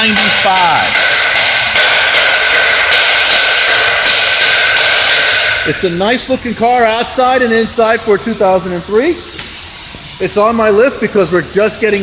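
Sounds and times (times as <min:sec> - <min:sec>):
machine rushing noise and whine: 0:00.0 - 0:11.9.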